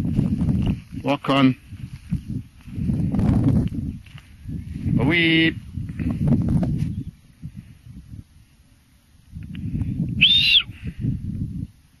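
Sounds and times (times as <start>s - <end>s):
wind rumble on microphone: 0.0s - 12.0s
short high whistle: 10.2s - 10.8s.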